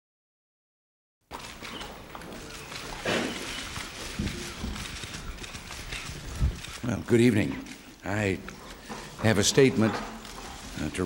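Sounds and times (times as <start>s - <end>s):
footsteps: 1.3s - 11.0s.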